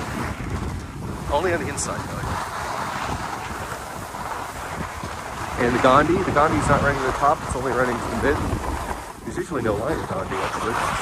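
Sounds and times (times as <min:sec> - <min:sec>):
skis hissing over snow: 0:00.0 - 0:11.0
wind buffeting microphone: 0:00.0 - 0:11.0.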